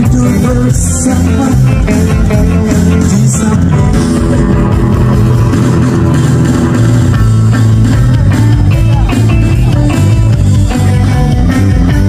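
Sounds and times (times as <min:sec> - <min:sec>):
bass guitar: 0:00.0 - 0:12.0
electric guitars: 0:00.0 - 0:12.0
electronic drum kit: 0:00.0 - 0:12.0.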